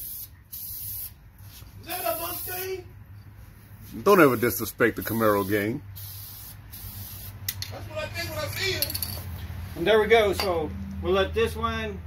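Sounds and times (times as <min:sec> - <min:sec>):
spray can hissing: 0:00.0 - 0:02.8, 0:04.0 - 0:07.6.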